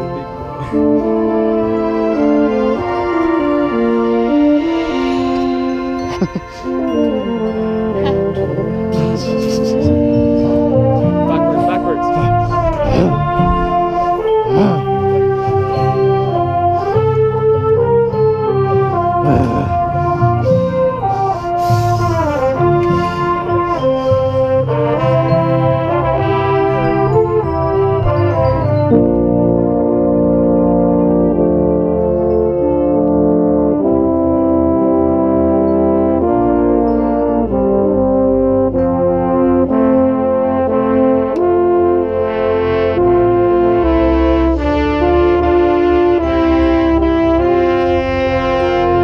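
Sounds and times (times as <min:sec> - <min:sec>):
baritone horn playing: 0:00.0 - 0:49.0
brass line playing: 0:00.0 - 0:49.0.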